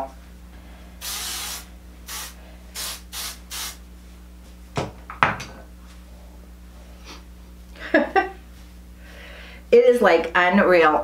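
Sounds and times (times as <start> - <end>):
hair spray hissing: 1.0 - 3.8.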